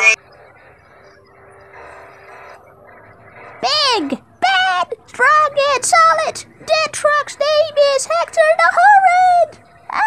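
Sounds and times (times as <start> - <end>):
faint instrumental music: 0.0 - 10.0.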